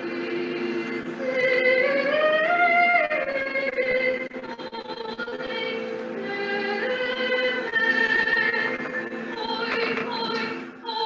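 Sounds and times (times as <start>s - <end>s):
choir singing folk song: 0.0s - 4.3s.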